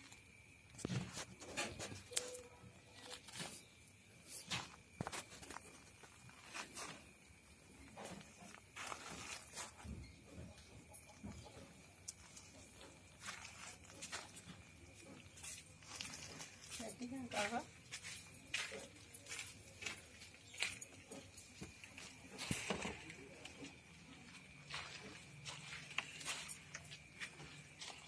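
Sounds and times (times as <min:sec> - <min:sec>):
phone rustling against straw and plastic: 0:00.8 - 0:07.2, 0:07.8 - 0:10.0, 0:11.5 - 0:23.7
faint high-pitched tone: 0:01.6 - 0:03.7.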